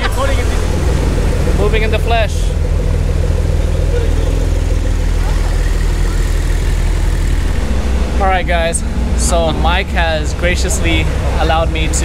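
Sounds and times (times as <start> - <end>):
car engine at low revs: 0.0 - 12.0.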